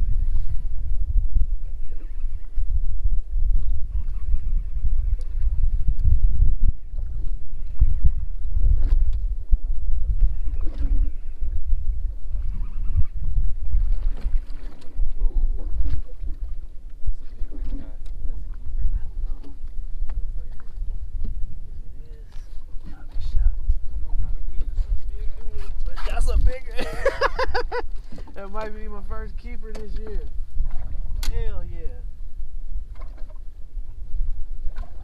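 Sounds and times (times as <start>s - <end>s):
wind and water rumble: 0.0s - 35.0s
knocks and rattles on boat: 12.4s - 31.6s, 32.9s - 33.5s, 34.2s - 35.0s.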